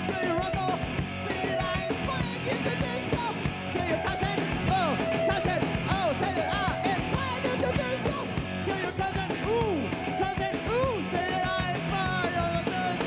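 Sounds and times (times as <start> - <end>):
punk rock band playing live: 0.0 - 13.0.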